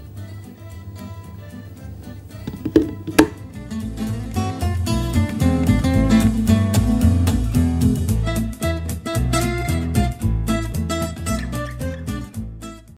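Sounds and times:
sharp knocks: 2.5s - 3.4s
acoustic guitar strumming: 2.5s - 3.8s.

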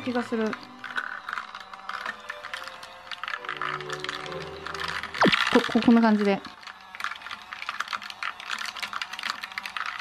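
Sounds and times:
background music with held notes: 0.0s - 10.0s
toy washing machine rattling: 0.0s - 10.0s.

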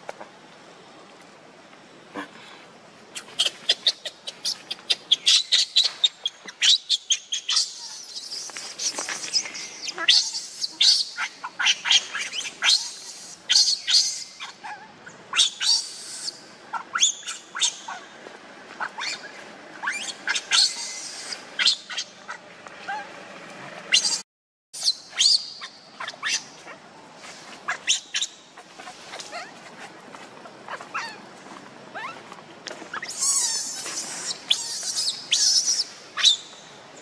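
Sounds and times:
baby monkey screaming: 3.2s - 18.0s, 18.8s - 23.0s, 23.9s - 24.2s, 24.8s - 26.6s, 33.0s - 36.4s.

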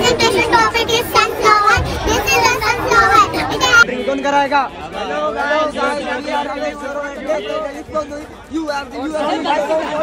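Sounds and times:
children talking loudly: 0.0s - 4.0s.

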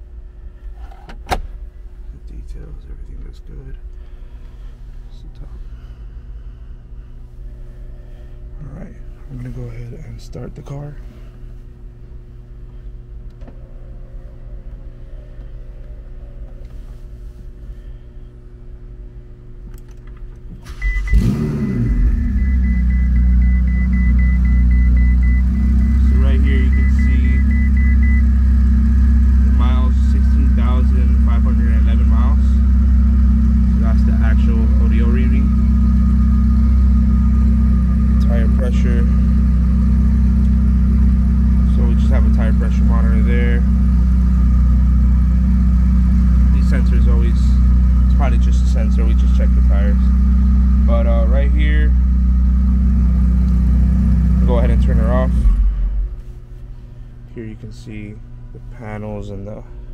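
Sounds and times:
low hum: 0.0s - 59.9s
car engine starting and idling: 19.5s - 59.4s
rapid high beeping: 21.9s - 32.2s.

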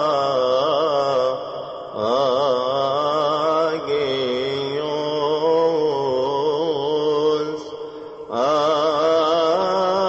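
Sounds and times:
liturgical chant: 0.0s - 10.0s.

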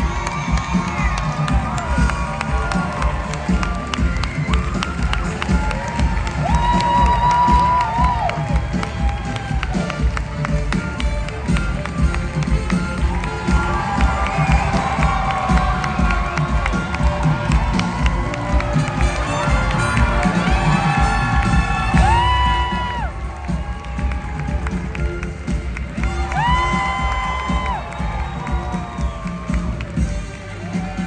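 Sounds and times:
audience cheering and clapping: 0.0s - 31.0s
live band playing: 0.0s - 31.0s.

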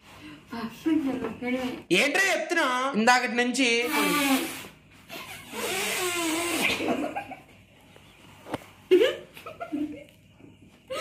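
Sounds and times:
breath blowing into valve: 3.8s - 4.8s, 5.5s - 6.8s.

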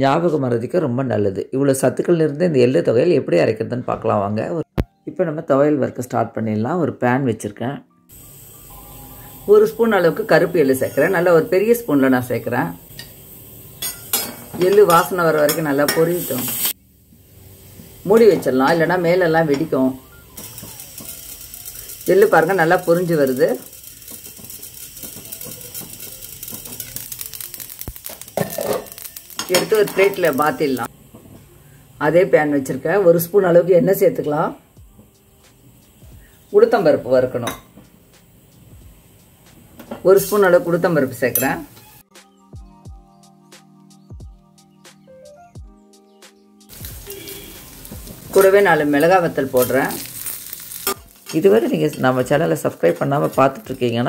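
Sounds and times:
seeds crackling in a pan: 8.1s - 30.9s, 38.5s - 42.0s, 46.7s - 54.0s.

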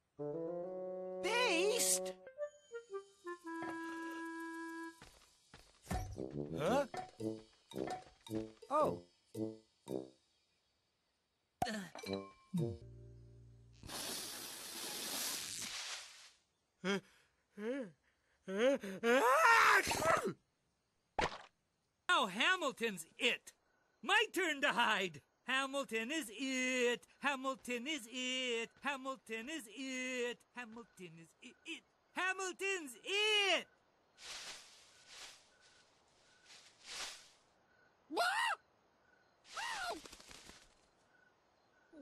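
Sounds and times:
cartoon beast vocal outburst: 19.0s - 20.4s.

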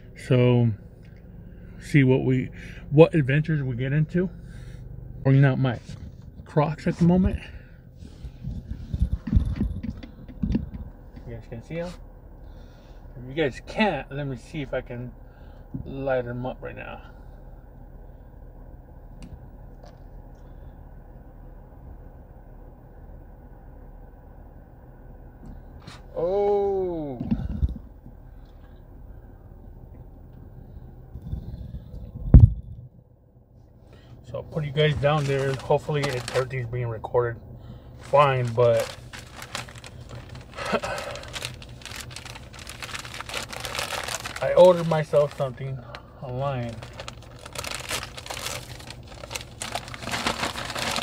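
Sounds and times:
car cabin hum: 0.0s - 51.0s
plastic package crinkling: 35.0s - 36.6s, 38.0s - 45.6s, 46.6s - 51.0s.

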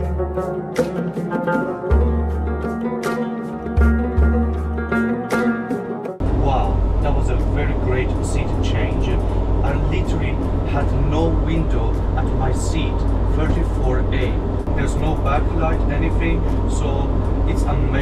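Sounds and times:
background music: 0.0s - 18.0s
airliner cabin drone: 6.2s - 18.0s
man talking: 6.2s - 18.0s.

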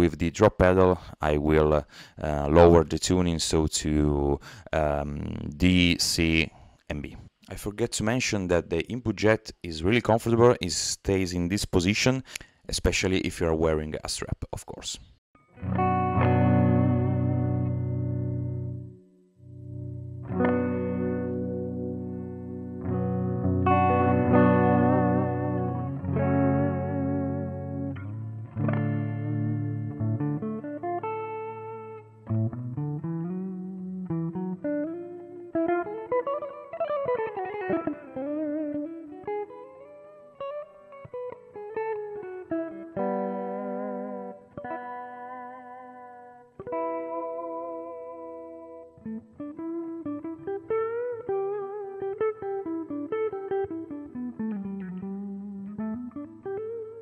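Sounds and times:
clean electric guitar melody: 15.4s - 57.0s.

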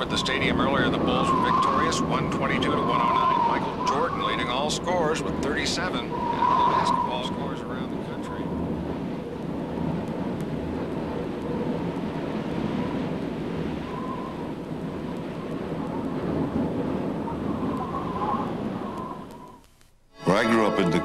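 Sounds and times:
faint wavering whistle: 0.0s - 8.5s, 13.8s - 14.6s, 17.2s - 21.0s
blizzard wind blowing: 0.0s - 21.0s.

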